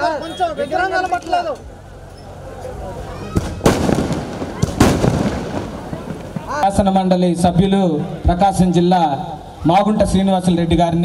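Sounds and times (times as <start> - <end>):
fireworks crackling bursts: 3.3 - 7.5.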